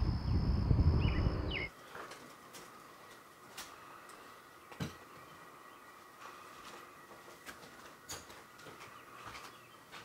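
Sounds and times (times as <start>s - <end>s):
low rumble: 0.0s - 1.7s
bird chirps: 0.3s - 1.7s.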